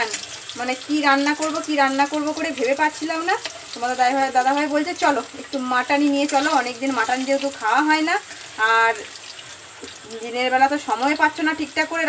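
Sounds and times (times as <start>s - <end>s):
woman talking: 0.0s - 9.1s, 10.0s - 12.0s
potatoes sizzling in oil: 0.0s - 12.0s.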